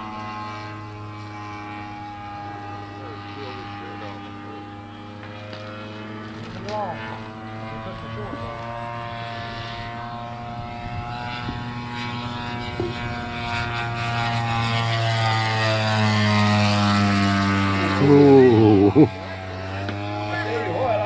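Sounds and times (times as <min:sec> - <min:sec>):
model plane engine and propeller drone: 0:00.0 - 0:21.0.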